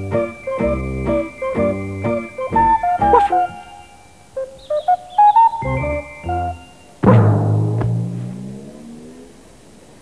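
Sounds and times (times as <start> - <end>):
low booming drum-like note: 7.0 - 8.8.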